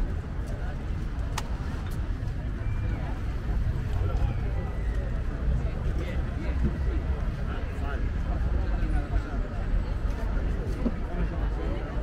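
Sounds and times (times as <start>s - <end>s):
faint voices of passers-by: 0.0s - 12.0s.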